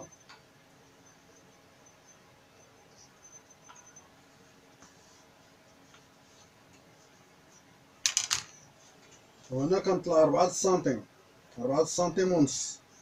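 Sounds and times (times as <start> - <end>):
faint handling noises: 4.3 - 9.6
plastic square clattering on table: 8.1 - 8.5.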